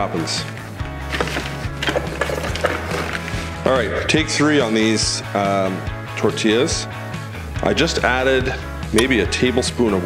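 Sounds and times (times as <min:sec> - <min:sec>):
background music with bass: 0:00.0 - 0:10.0
tortilla press knocks and clacks: 0:01.2 - 0:03.3.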